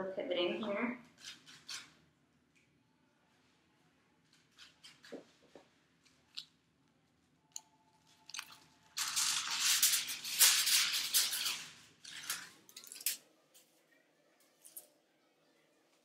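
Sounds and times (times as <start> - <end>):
foil crinkling: 8.2 - 12.9.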